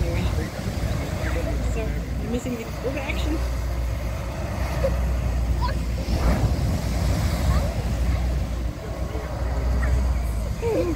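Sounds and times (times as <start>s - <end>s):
low steady rumble: 0.0s - 10.9s
surf breaking on beach: 0.0s - 10.9s.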